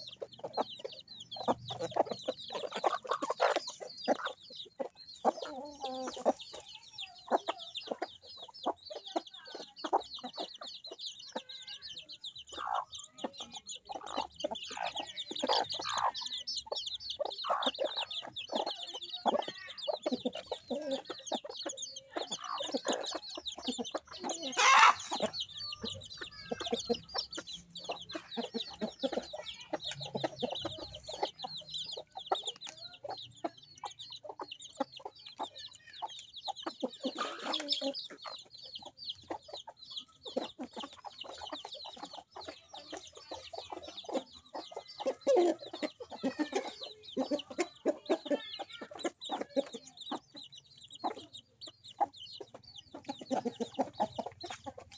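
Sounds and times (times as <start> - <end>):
chicks peeping: 0.0 - 54.9
hens clucking: 0.0 - 54.9.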